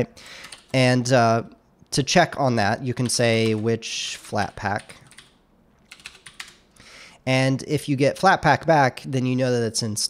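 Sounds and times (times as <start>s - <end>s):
computer keyboard keystrokes: 0.4s - 0.8s, 4.4s - 6.6s.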